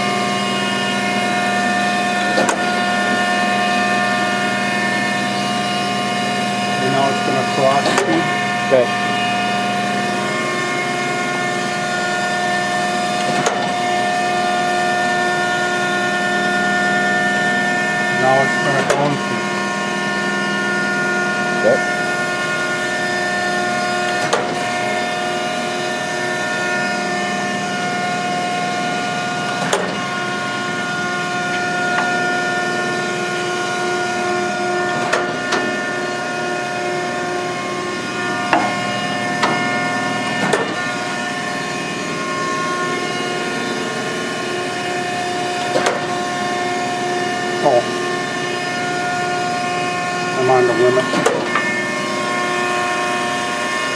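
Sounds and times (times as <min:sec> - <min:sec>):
surface grinder humming: 0:00.0 - 0:53.9.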